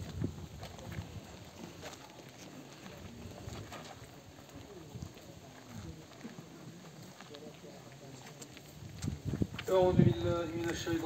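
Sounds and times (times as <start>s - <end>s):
faint distant voices: 0.0s - 11.0s
footsteps on gravel path: 0.0s - 11.0s.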